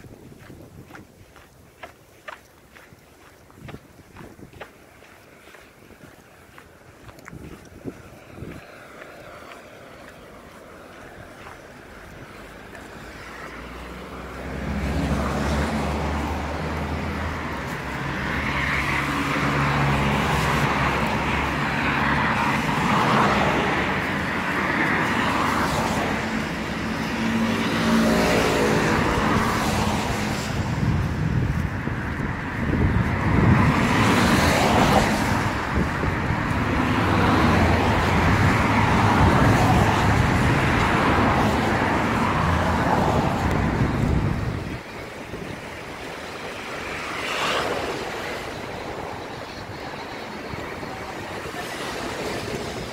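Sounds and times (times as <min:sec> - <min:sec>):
tyres on wet road: 0:00.0 - 0:52.9
cars driving past: 0:04.6 - 0:52.9.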